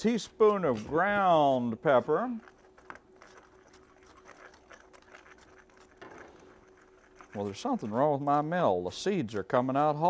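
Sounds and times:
pepper mill grinding: 0.0s - 9.7s.

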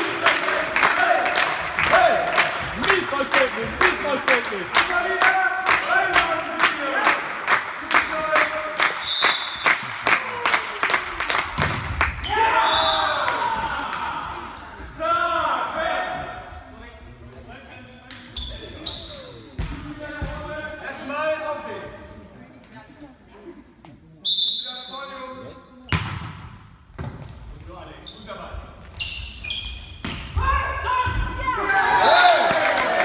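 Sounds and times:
shouts and calls in hall: 0.0s - 11.4s, 12.0s - 16.5s, 30.4s - 33.0s
spectators clapping in rhythm: 0.0s - 12.2s, 32.1s - 33.0s.

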